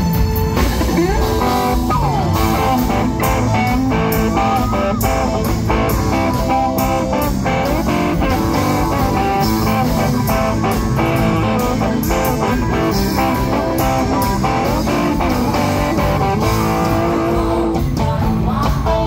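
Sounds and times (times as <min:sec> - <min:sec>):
drums: 0:00.0 - 0:19.0
electric guitar: 0:00.0 - 0:19.0
live rock band playing: 0:00.0 - 0:19.0.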